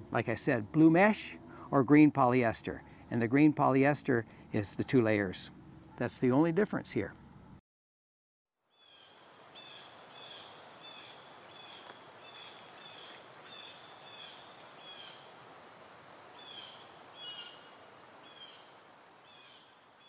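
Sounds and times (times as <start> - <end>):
outdoor background hiss: 0.0 - 7.6, 8.6 - 20.0
bird chirping: 8.8 - 15.3, 16.4 - 19.8.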